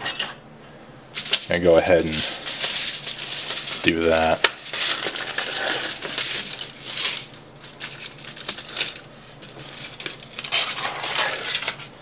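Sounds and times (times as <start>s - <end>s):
aluminum foil crackling: 1.2s - 12.0s.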